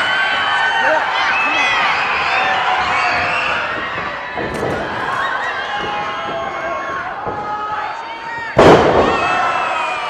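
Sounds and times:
crowd chatter and shouts: 0.0 - 10.0
wrestling ring crash: 2.8 - 10.0.

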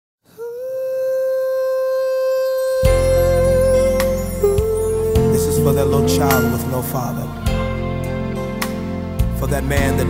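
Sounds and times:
person humming: 0.3 - 7.6.

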